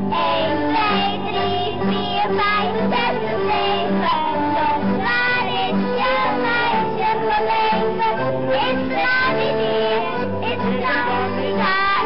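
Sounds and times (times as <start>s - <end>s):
children singing: 0.0s - 12.0s
instrumental accompaniment: 0.0s - 12.0s.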